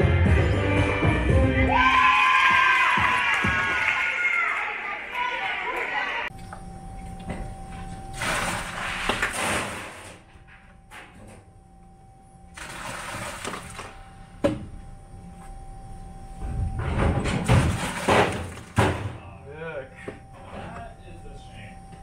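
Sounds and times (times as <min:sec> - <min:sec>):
faint steady hum: 0:06.2 - 0:22.0.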